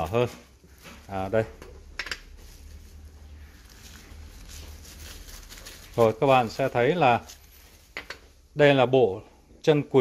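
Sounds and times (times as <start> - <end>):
paper rustling: 2.2 - 8.1.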